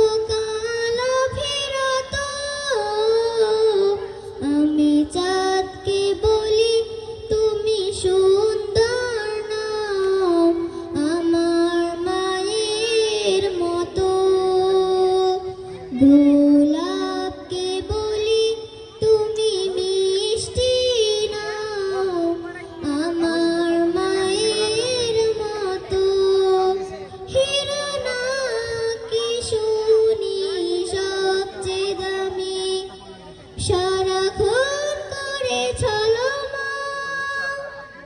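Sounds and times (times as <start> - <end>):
girl singing over public address: 0.0 - 38.0.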